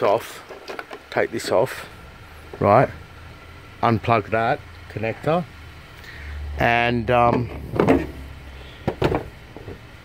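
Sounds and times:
plastic clicks and knocks: 8.8 - 9.8.

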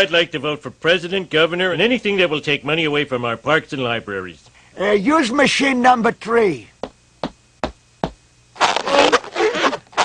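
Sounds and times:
cartoon footsteps on hard floor: 6.8 - 8.2.

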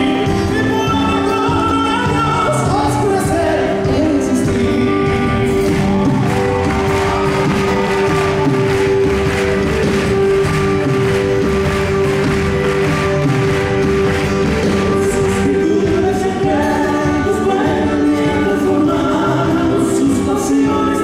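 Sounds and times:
acoustic guitars: 0.0 - 21.0
keyboard: 0.0 - 21.0
light percussion beat: 1.4 - 19.1.

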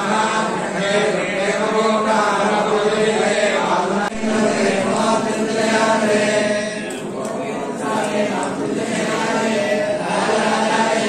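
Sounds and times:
group of voices chanting: 0.0 - 11.0.

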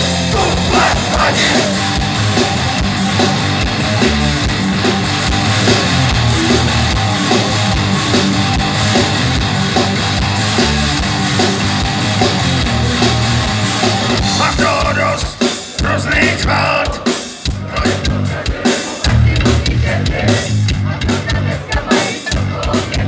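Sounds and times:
electric guitars: 0.0 - 17.0
drum kit beat: 0.0 - 23.0.

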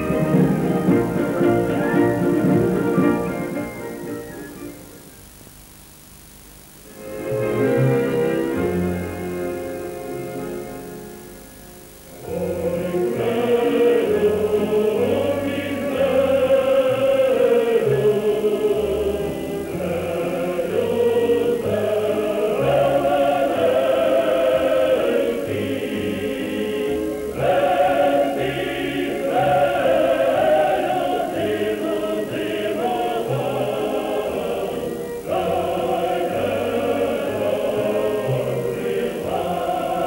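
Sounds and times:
muffled choir singing held chords: 0.0 - 5.2, 6.9 - 40.0.

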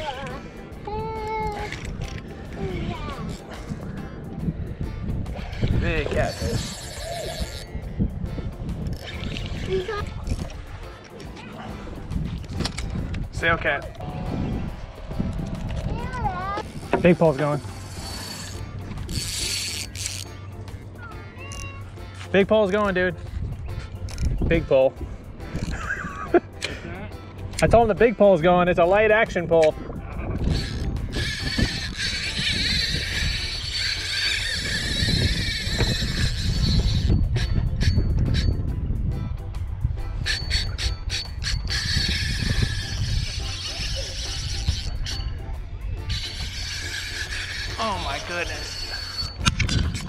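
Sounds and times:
wind rumble on microphone: 0.0 - 19.8, 22.8 - 50.0
fishing reel drag buzzing: 5.4 - 7.8, 8.8 - 10.5, 16.6 - 20.4, 30.4 - 38.6, 40.2 - 45.4, 46.0 - 50.0.

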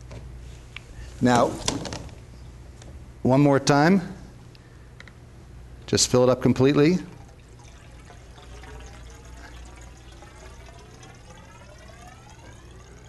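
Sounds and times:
rising tones from filling tube: 6.9 - 13.0
water pouring into tube: 7.0 - 13.0.

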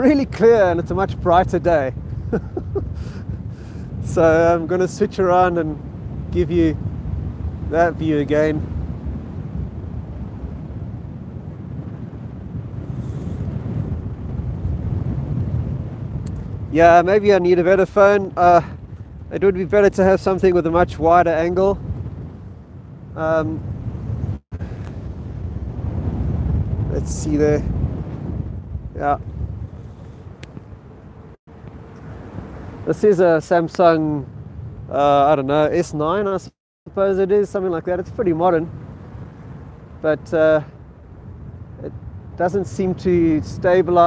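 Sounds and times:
wind buffeting microphone: 0.0 - 44.0.

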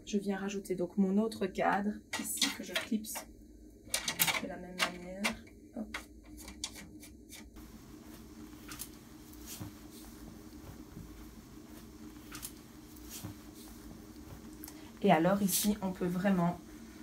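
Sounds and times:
low steady hum: 0.0 - 17.0
fabric rustling: 7.6 - 17.0.

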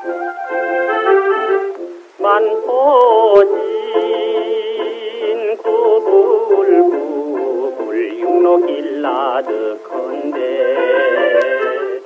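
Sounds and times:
small band playing: 0.0 - 12.0
man singing with vibrato: 2.2 - 12.0.

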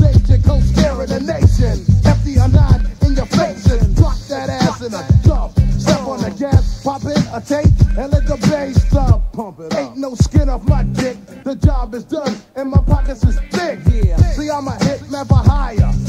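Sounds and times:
deep bass hits: 0.0 - 4.1
rapping over a beat: 0.0 - 16.0.

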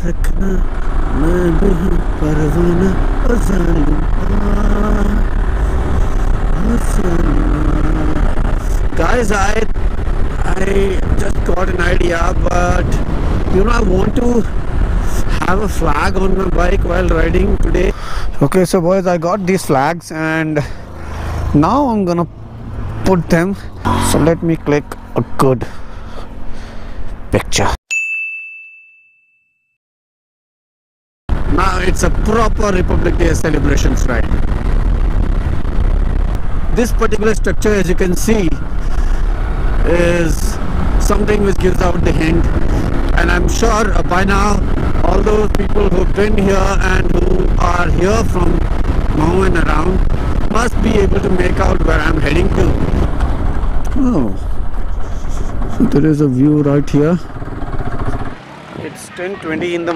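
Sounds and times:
man humming: 0.0 - 5.3, 5.9 - 8.9
motorcycle engine: 0.0 - 18.2, 19.0 - 27.2, 31.4 - 59.9
wind rumble: 0.0 - 27.4, 31.3 - 59.9
bright ding: 27.9 - 29.8.

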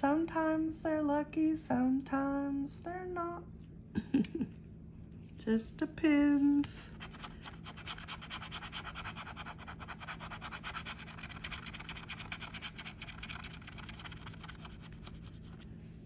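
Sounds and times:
metal scraping lottery ticket: 7.0 - 15.6.

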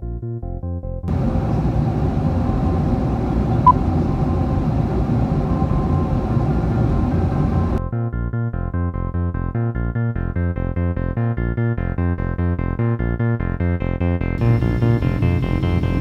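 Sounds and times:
jet engines and airflow rumble: 1.1 - 7.8, 14.4 - 16.0.

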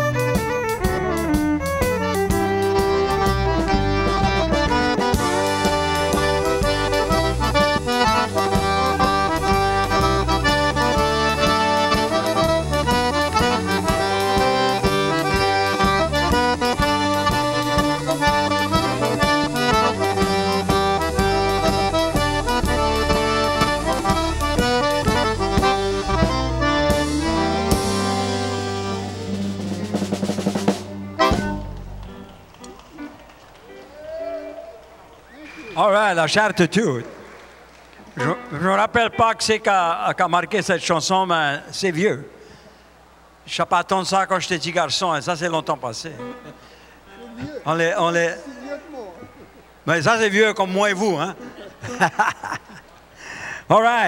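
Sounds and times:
electric bass: 0.0 - 32.6
diatonic accordion lead: 0.0 - 33.9, 46.1 - 47.6
fiddle: 0.0 - 34.0
drum kit: 0.0 - 34.1
steel guitar: 0.0 - 34.6.

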